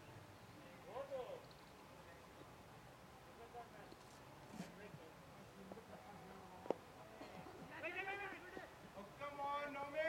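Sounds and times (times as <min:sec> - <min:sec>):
faint open-air background: 0:00.0 - 0:10.0.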